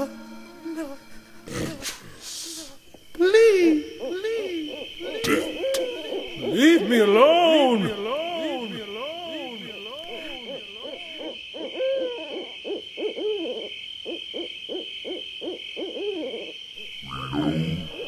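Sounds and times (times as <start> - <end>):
high-pitched pulsing hum: 0.0 - 6.6
eerie hooting tones: 0.0 - 18.0.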